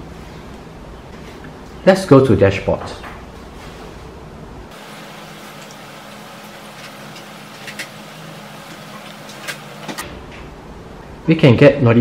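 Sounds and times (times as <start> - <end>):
low steady hum: 3.3 - 11.3.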